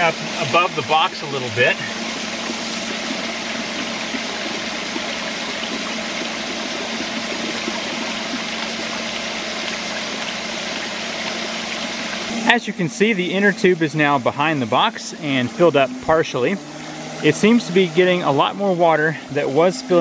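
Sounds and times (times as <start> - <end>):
water pouring over rock: 0.0 - 15.8.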